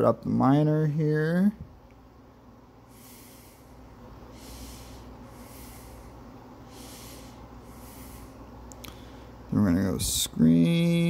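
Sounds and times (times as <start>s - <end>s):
low steady hum: 0.0s - 11.0s
breathing through nose: 2.9s - 9.4s.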